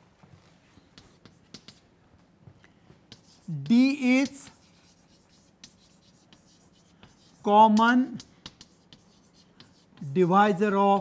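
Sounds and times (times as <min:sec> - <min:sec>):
chalk scratching on a blackboard: 0:00.7 - 0:01.9, 0:03.1 - 0:11.0.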